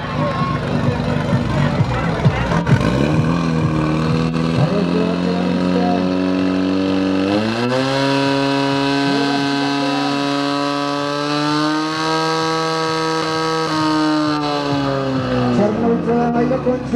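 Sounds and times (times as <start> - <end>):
pump engine revving: 0.0 - 16.0.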